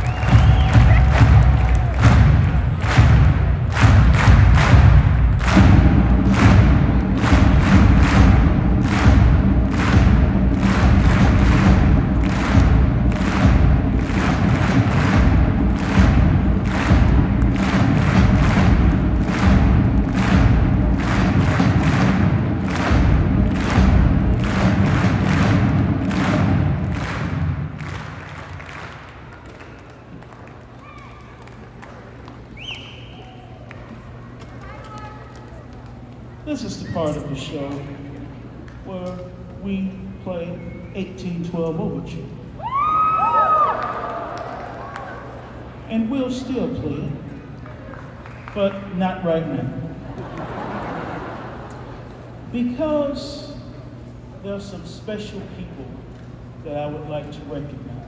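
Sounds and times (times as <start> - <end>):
marching band playing: 0.0 - 29.0
drum line beat: 0.0 - 29.5
hall ambience: 0.0 - 34.4.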